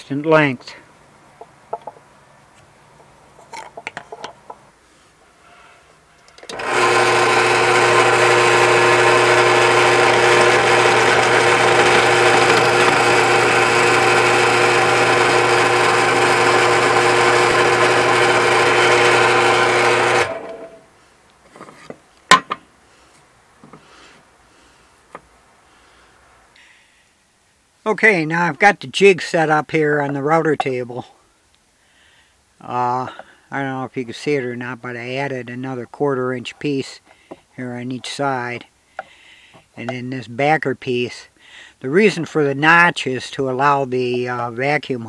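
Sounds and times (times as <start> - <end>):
drill press boring wood: 6.4 - 20.8.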